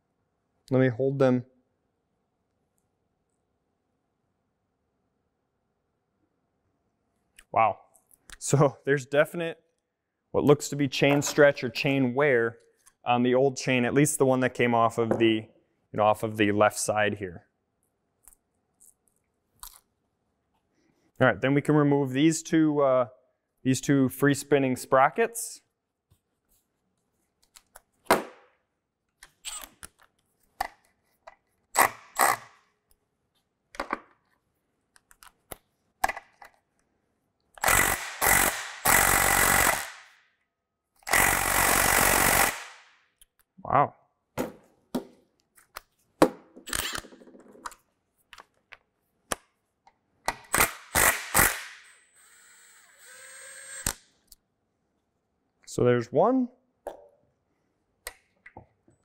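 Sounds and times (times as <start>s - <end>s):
power tool running: 37.6s - 39.9s.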